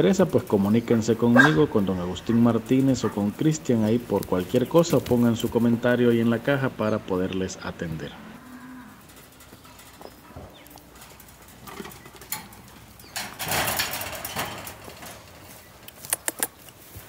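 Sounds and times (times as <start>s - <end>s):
cattle mooing faintly: 7.8s - 9.4s.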